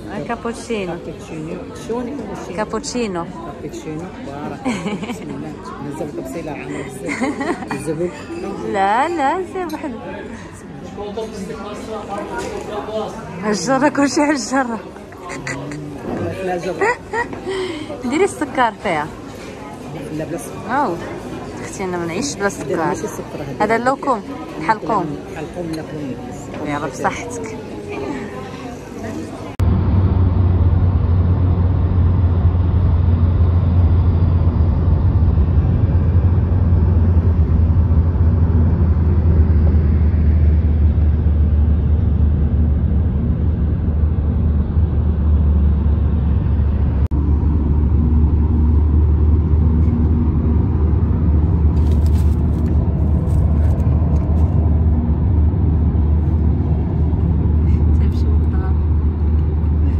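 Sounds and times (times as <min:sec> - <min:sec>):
car cabin road rumble: 0:29.6 - 0:59.9.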